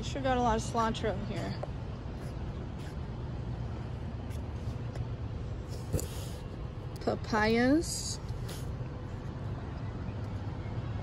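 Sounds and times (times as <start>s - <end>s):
market background rumble: 0.0s - 10.0s.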